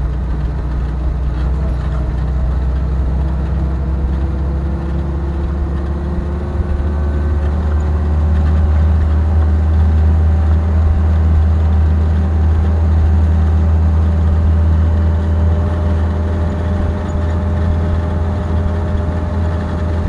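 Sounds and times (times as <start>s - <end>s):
vehicle engine drone: 0.0s - 20.0s.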